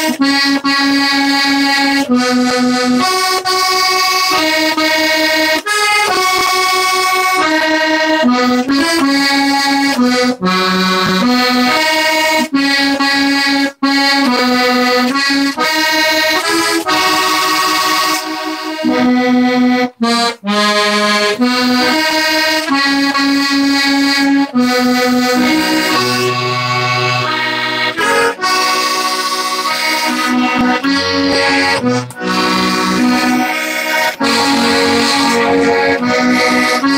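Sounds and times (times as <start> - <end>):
accordion playing a tune: 0.0 - 36.9.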